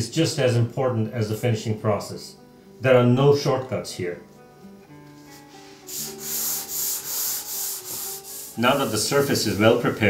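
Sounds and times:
quiet guitar music: 0.0 - 10.0
sanding block on wood: 5.8 - 9.8.

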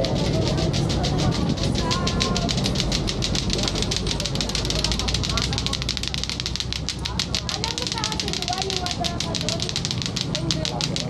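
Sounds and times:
murmur of voices: 0.0 - 11.0
rapid even clicking: 0.0 - 11.0.

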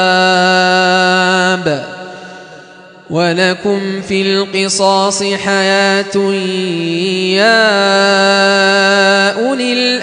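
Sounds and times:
man reciting a long note: 0.0 - 10.0.

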